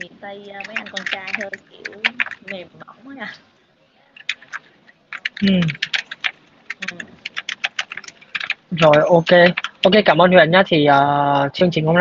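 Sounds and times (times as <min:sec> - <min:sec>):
keyboard typing: 0:00.0 - 0:02.7, 0:04.2 - 0:10.2.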